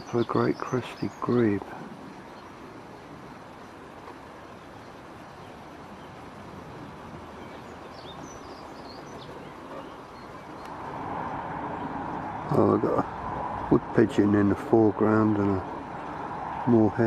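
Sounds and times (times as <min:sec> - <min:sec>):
outdoor hiss and rumble: 0:00.0 - 0:17.0
small birds chirping: 0:00.0 - 0:17.0.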